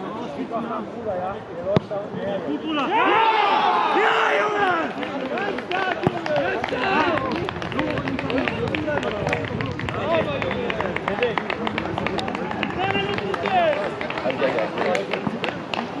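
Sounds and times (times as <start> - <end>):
people shouting and calling: 2.7 - 5.0.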